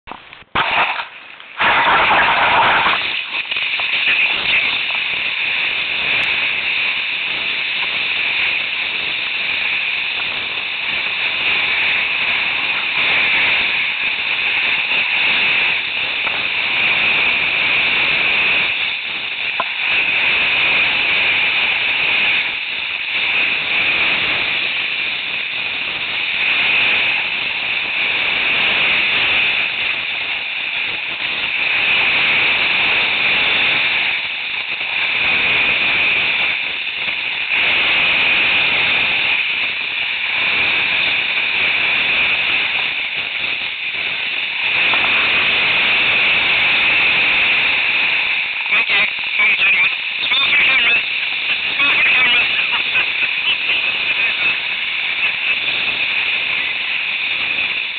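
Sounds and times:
skis hissing on snow: 0:01.6 - 0:57.9.

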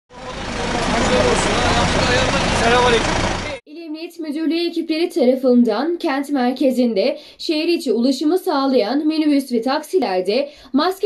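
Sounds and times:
traffic hum: 0:00.1 - 0:03.6
woman narrating: 0:03.7 - 0:11.0.

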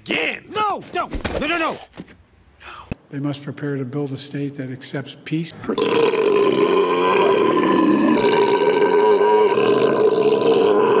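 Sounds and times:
man screaming into a microphone: 0:05.8 - 0:11.0.

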